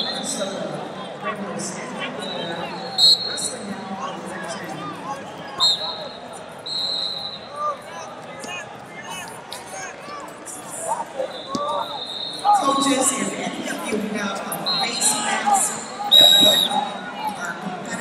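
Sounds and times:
babble of many voices: 0.0s - 18.0s
referee whistle blasts: 2.2s - 3.5s, 5.6s - 7.5s, 11.2s - 12.6s, 16.0s - 16.9s.

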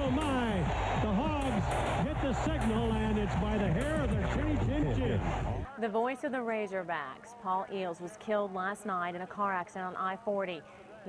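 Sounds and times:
sportscaster excited commentary: 0.0s - 11.0s
stadium crowd noise: 0.0s - 11.0s.

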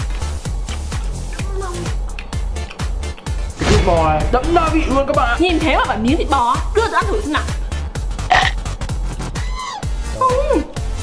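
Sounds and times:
upbeat music with kick drum: 0.0s - 11.0s
falling hum: 0.1s - 9.3s.

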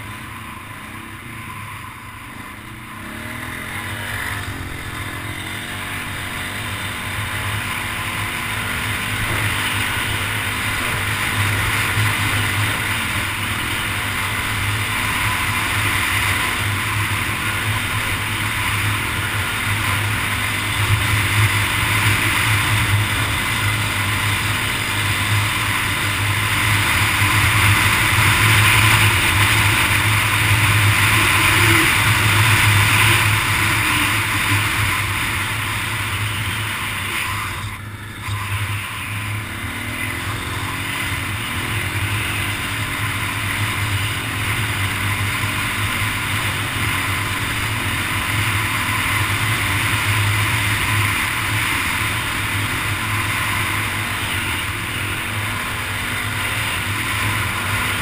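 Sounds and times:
atv engine running: 0.0s - 58.0s.

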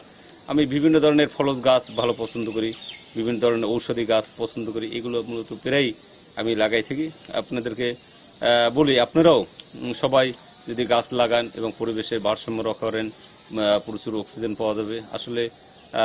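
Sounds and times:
high-pitched insect chorus: 0.0s - 16.0s
man talking: 0.0s - 16.0s.

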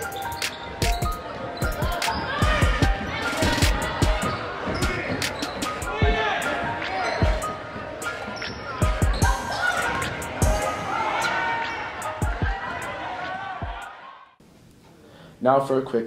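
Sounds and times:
voices calling out: 0.0s - 14.0s.

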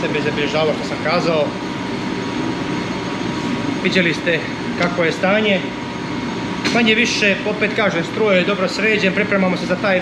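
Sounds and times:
engine room machinery hum: 0.0s - 10.0s
thin steady whine: 0.0s - 10.0s.

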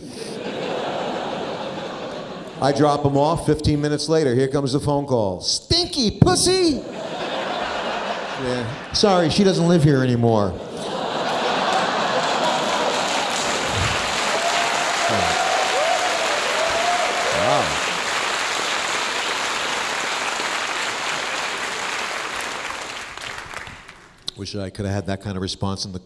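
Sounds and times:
audience applauding: 10.8s - 24.2s.

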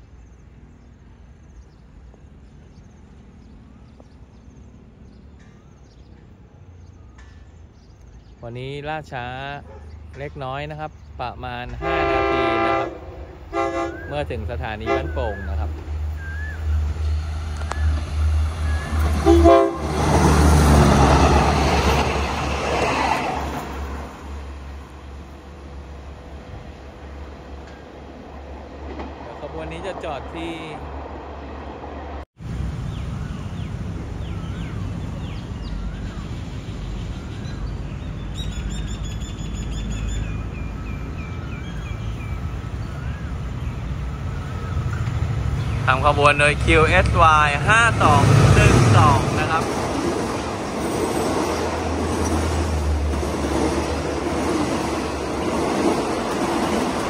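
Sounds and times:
birds chirping: 0.0s - 32.2s, 32.8s - 57.0s
diesel train engine rumble: 0.0s - 57.0s
train horn: 11.7s - 15.6s, 19.1s - 21.0s.

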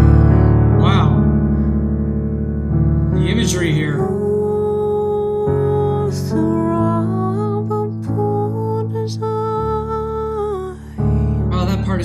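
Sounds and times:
piano accompaniment: 0.0s - 12.0s
woman singing slow song: 4.0s - 11.2s.

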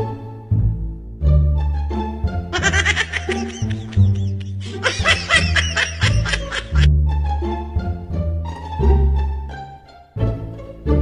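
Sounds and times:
background music with bass: 0.0s - 11.0s
high-pitched giggling laughter: 2.6s - 6.9s.

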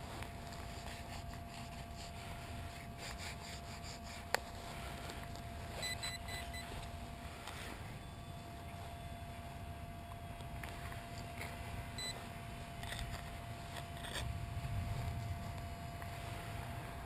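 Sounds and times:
knife scraping frozen soil: 0.0s - 5.4s, 12.8s - 14.3s
faint steady hum: 0.0s - 17.0s
quick electronic beeps: 5.8s - 6.7s.

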